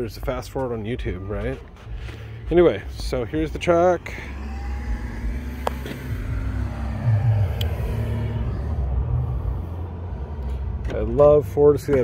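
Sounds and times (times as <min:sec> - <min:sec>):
vehicle engine running: 0:00.0 - 0:12.0
faint hum: 0:03.0 - 0:10.9.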